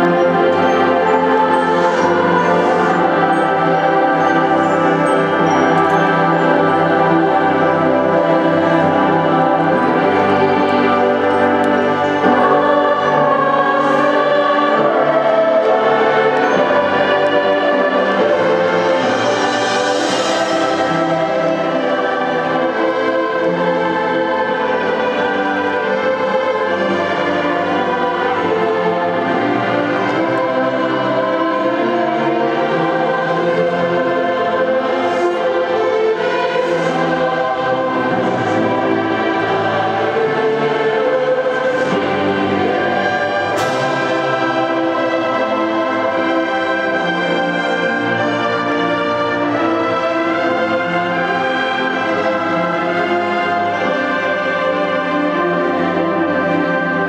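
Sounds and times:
choir singing: 0.0 - 57.0
orchestra strings holding chords: 0.0 - 57.0.

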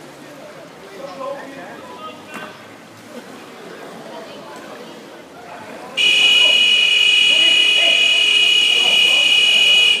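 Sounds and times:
scoreboard buzzer tone: 6.0 - 10.0.

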